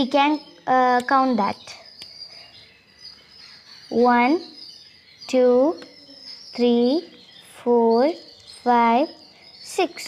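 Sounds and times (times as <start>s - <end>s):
high-pitched insect chirring: 0.0s - 10.0s.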